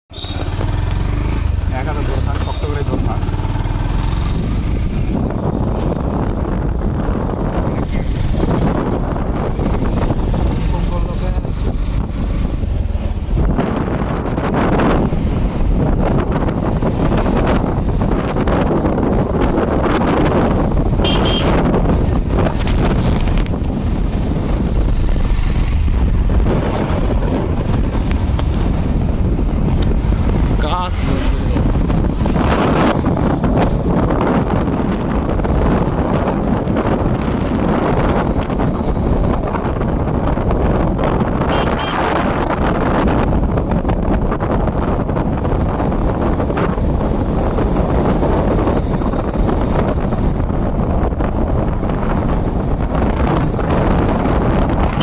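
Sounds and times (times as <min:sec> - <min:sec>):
motorcycle engine running: 0:00.1 - 0:55.0
wind rumble on microphone: 0:00.1 - 0:55.0.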